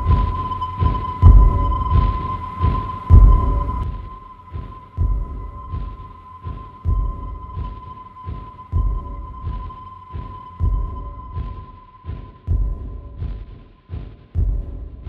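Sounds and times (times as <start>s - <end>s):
high held tone: 0.0s - 13.0s
heartbeat-like thumps: 0.0s - 15.0s.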